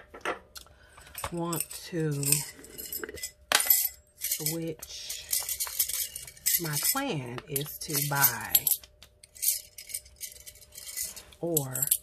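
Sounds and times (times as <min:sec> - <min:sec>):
small metal pieces jingling: 0:01.6 - 0:12.0.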